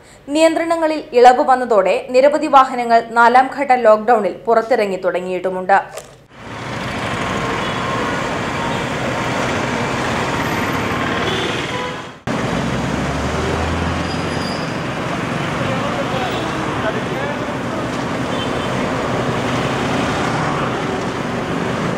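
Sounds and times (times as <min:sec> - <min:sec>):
street traffic passing: 0:06.0 - 0:21.9.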